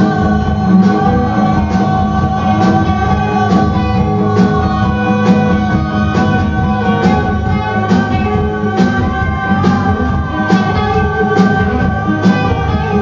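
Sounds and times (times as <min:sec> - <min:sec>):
drums: 0:00.0 - 0:13.0
electric guitars sustained notes: 0:00.0 - 0:13.0.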